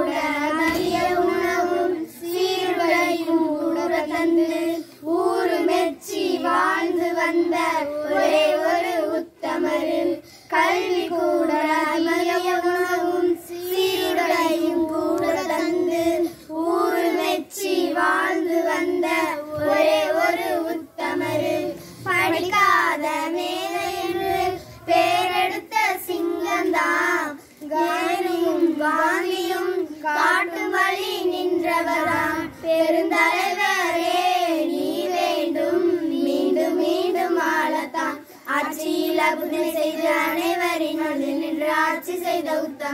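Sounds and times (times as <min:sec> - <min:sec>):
children singing in unison: 0:00.0 - 0:42.9.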